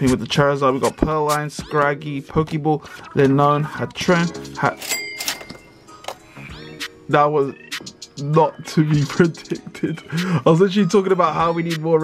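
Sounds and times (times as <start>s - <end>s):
bright chime: 4.8s - 5.9s.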